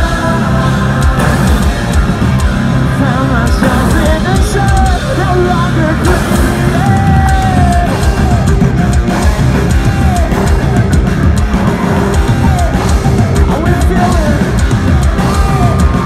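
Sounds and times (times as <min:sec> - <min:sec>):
bass guitar: 0:00.0 - 0:16.0
distorted electric guitars: 0:00.0 - 0:16.0
drum kit: 0:00.0 - 0:16.0
person singing long notes: 0:00.0 - 0:16.0.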